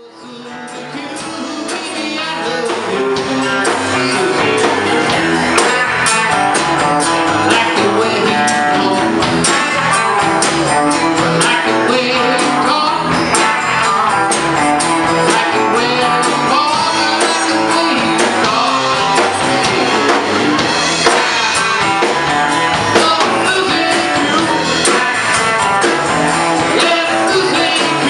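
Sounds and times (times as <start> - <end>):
country-rock band playing: 0.0 - 28.0.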